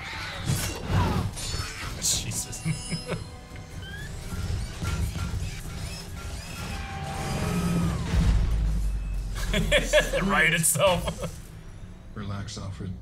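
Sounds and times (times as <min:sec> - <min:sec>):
dramatic film score: 0:00.0 - 0:13.0
mechanical sound effects: 0:00.4 - 0:11.4.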